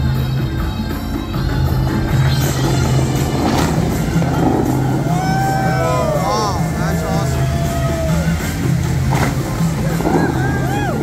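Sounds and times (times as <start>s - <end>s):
music over loudspeakers: 0.0s - 11.0s
fountain water jets rushing: 1.4s - 11.0s.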